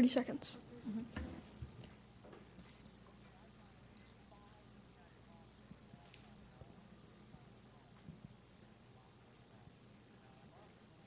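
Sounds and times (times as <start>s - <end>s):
high electronic timer beeps: 2.6s - 3.0s, 4.0s - 4.2s.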